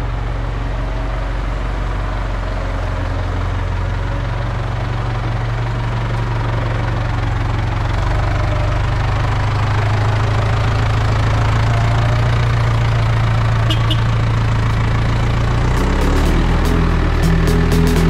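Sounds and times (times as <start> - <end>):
tractor diesel engine running: 0.0 - 18.0.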